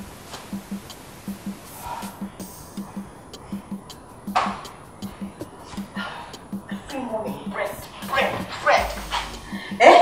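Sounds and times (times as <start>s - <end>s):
soft music beat: 0.0s - 10.0s.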